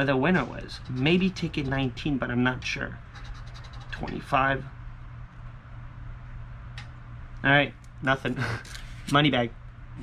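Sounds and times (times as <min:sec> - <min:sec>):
low background hum: 0:00.0 - 0:10.0
coin scratching lottery ticket: 0:00.4 - 0:02.0, 0:03.1 - 0:04.1.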